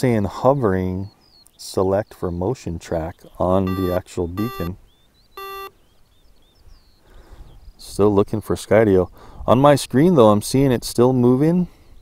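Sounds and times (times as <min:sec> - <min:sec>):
short electronic beeps: 0:03.6 - 0:04.8, 0:05.4 - 0:05.8.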